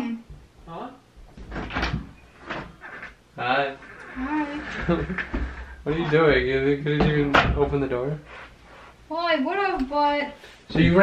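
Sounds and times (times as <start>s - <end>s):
door knocks and clatters: 1.3s - 2.7s, 6.9s - 7.9s.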